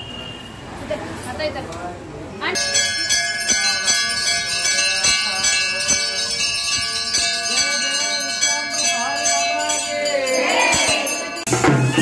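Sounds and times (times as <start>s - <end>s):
temple bells ringing: 2.6s - 12.0s.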